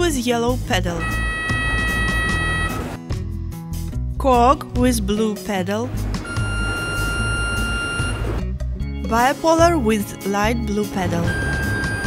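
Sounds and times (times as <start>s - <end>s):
background music: 0.0s - 12.0s
steady electronic activation tone: 1.0s - 3.0s, 6.3s - 8.4s.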